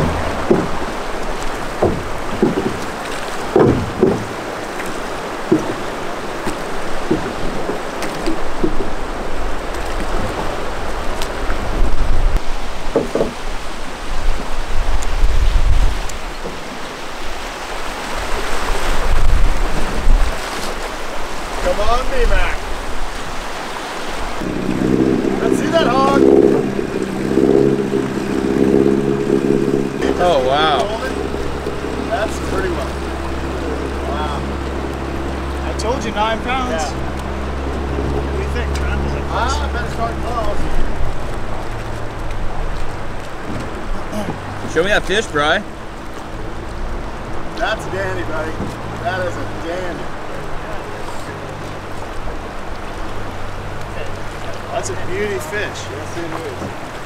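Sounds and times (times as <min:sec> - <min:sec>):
river water rushing through rapids: 0:00.0 - 0:57.0
wind gusting on microphone: 0:00.0 - 0:57.0
steady low hum with tones: 0:24.4 - 0:42.6.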